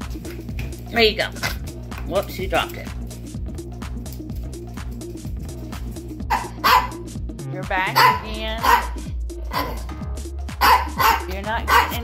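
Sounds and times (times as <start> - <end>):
background music: 0.0 - 12.0
small dog barking: 6.3 - 7.0, 7.9 - 9.9, 10.6 - 12.0.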